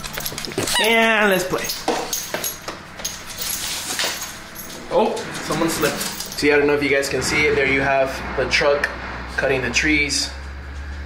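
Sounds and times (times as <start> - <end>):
dog scuffling on hard floor: 0.0 - 6.4.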